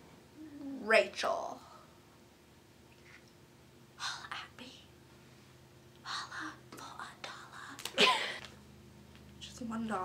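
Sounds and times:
faint room hum: 0:00.0 - 0:10.0
woman whispering: 0:04.0 - 0:04.9, 0:06.0 - 0:07.8.

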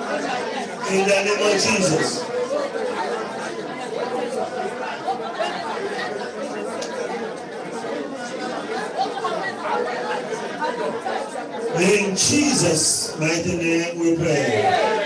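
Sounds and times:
many voices praying aloud: 0:00.0 - 0:15.0.

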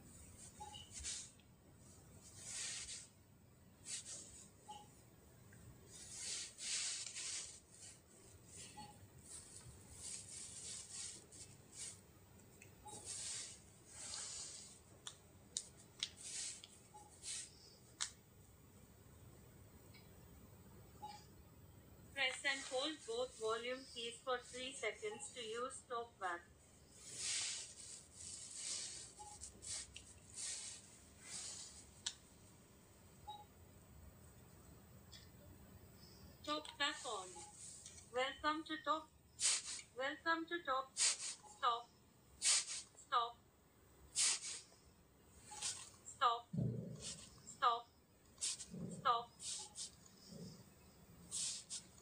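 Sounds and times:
fingers rustling against phone: 0:00.2 - 0:03.2, 0:03.8 - 0:04.9, 0:05.8 - 0:18.2, 0:26.9 - 0:32.3, 0:36.8 - 0:38.1, 0:44.2 - 0:44.8, 0:45.4 - 0:46.1, 0:47.0 - 0:47.6, 0:48.4 - 0:50.5, 0:51.3 - 0:52.0.

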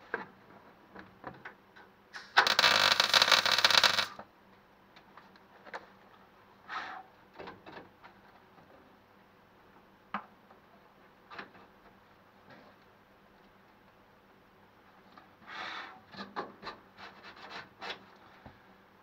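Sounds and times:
welding arc crackling: 0:02.4 - 0:04.2
welding torch and gloves clicking: 0:02.4 - 0:04.2.

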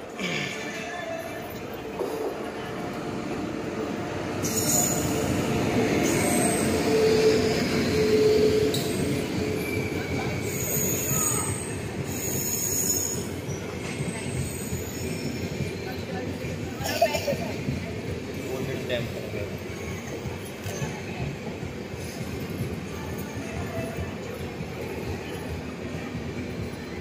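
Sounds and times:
train wheels rumbling on rails: 0:00.3 - 0:27.0
wheel and brake squeals: 0:06.0 - 0:16.0.

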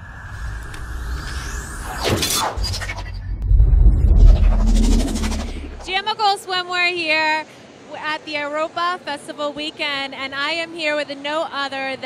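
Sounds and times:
rising swoosh: 0:00.0 - 0:06.0
sudden crash: 0:00.8 - 0:05.9
deep bass music: 0:03.3 - 0:05.9.

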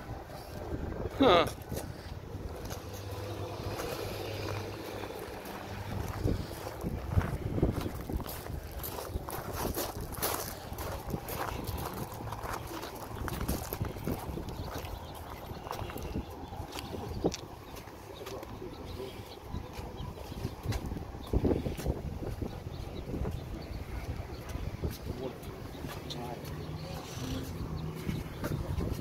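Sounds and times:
low outdoor rumble: 0:00.0 - 0:29.0
footsteps on gravel: 0:01.5 - 0:29.0.

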